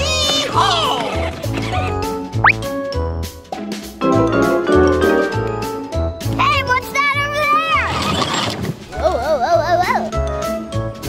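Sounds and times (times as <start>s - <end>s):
children's music with steady beat: 0.0s - 7.4s, 9.4s - 11.0s.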